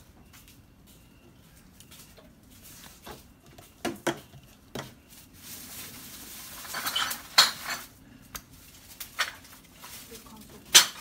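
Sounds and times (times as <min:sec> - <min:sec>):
plastic rustling scrape: 0:01.5 - 0:11.0.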